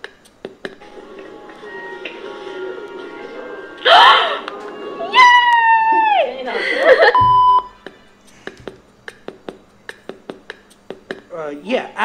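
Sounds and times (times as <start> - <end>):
woman squealing: 3.8 - 4.4, 5.0 - 6.5
woman exclaiming: 5.1 - 6.7.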